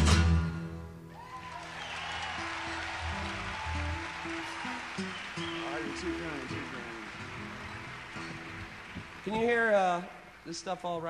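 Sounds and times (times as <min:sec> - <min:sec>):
audience applauding and cheering: 0:01.1 - 0:11.0.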